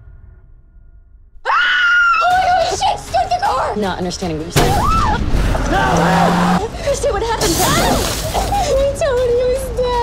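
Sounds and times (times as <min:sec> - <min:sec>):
woman screaming: 0:01.4 - 0:02.7.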